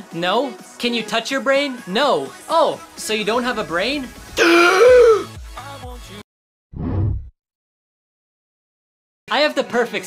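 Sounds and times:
loud drawn-out vocal sound: 4.3s - 5.4s.

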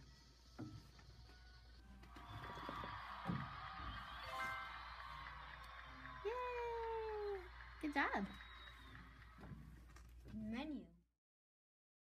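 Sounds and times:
faint app music: 0.0s - 10.6s
rising jingle: 4.2s - 5.4s.

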